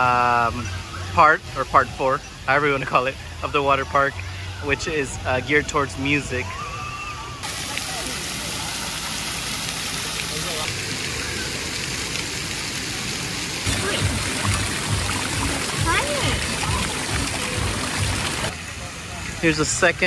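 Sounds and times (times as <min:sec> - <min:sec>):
water jet bubbling and spraying: 0:07.4 - 0:18.6
water splashing stream: 0:07.4 - 0:20.0
low rumbling: 0:13.6 - 0:18.5.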